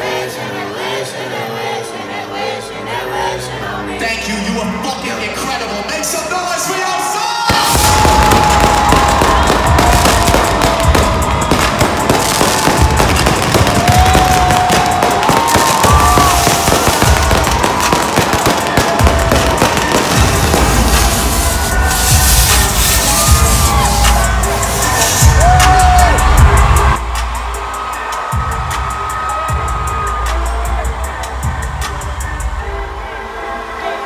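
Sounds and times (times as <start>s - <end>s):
loud music with heavy bass: 7.4s - 34.0s
fireworks crackling and popping: 7.5s - 26.0s.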